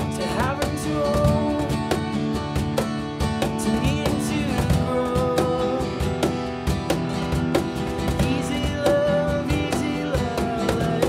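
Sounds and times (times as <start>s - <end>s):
person singing: 0.0s - 2.1s, 3.5s - 6.3s, 8.1s - 11.0s
cajon beat: 0.0s - 11.0s
strummed acoustic guitars: 0.0s - 11.0s.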